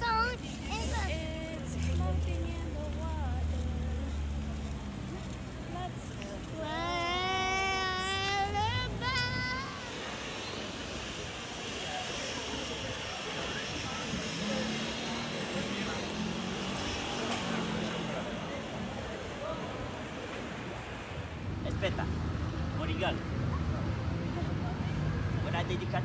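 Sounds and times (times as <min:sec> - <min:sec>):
faint indistinct voices: 0:00.0 - 0:21.6.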